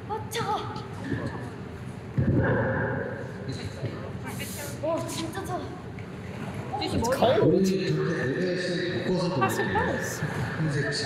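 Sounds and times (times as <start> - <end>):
woman talking: 0.0 - 1.4, 4.2 - 5.8.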